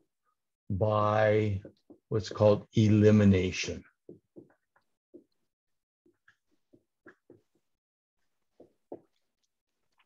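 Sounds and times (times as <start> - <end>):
marker writing on whiteboard: 3.9 - 9.5.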